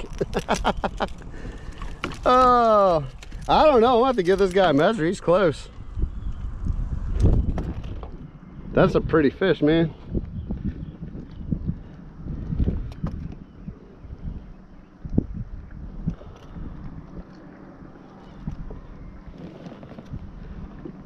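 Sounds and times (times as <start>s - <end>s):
wind rumbling on microphone: 0.0s - 21.0s.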